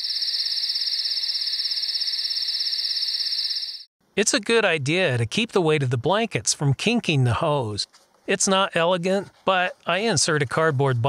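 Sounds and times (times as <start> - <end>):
crickets chirping: 0.0 - 3.9.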